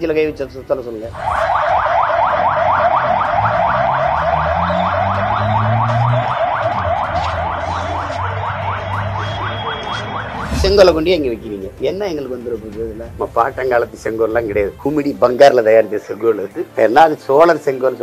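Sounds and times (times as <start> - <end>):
car alarm siren whooping: 1.1 - 10.9.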